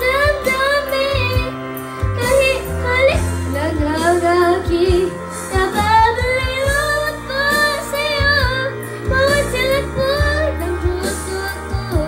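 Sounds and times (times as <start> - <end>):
backing track with bass and drums: 0.0 - 12.0
girl singing into a microphone: 0.0 - 12.0.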